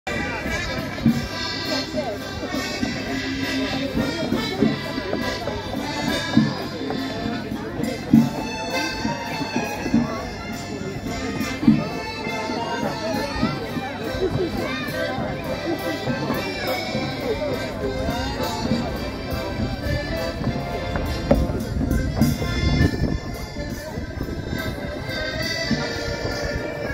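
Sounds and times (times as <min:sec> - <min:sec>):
heavy beat: 0:00.1 - 0:26.9
waltz music on keyboard: 0:00.1 - 0:26.9.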